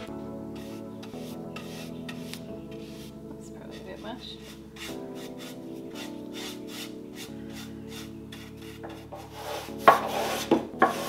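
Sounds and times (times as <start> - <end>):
background music: 0.0 - 11.0
brush scrubbing wood: 0.6 - 11.0.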